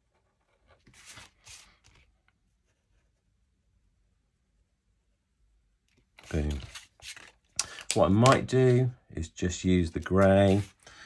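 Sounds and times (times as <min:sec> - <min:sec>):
papery swishes of card and marker: 0:00.8 - 0:02.0, 0:06.2 - 0:07.4, 0:10.0 - 0:10.8.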